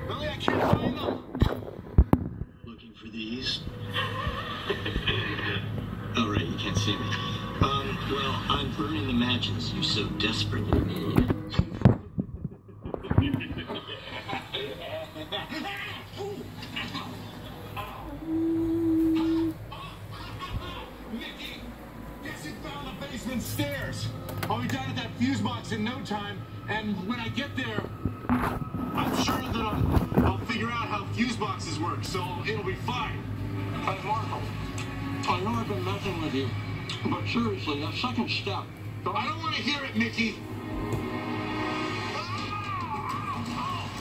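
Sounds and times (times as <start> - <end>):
steady low hum: 0.0 - 42.2
television voices and music: 0.0 - 44.0.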